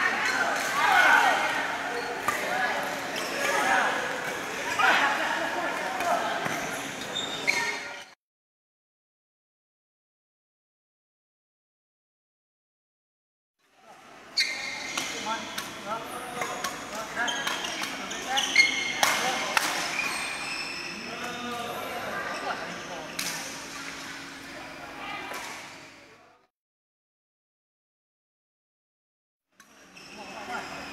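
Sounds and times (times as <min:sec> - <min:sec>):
reverberant voices and movement: 0:00.0 - 0:08.2, 0:13.6 - 0:26.5, 0:29.6 - 0:30.9
shoes squeaking on floor: 0:06.4 - 0:08.2, 0:14.4 - 0:15.6, 0:16.4 - 0:23.2.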